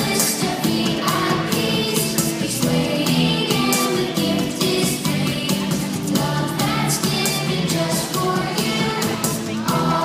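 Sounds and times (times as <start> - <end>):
backing track with steady beat: 0.0 - 10.0
children singing worship song: 0.0 - 10.0.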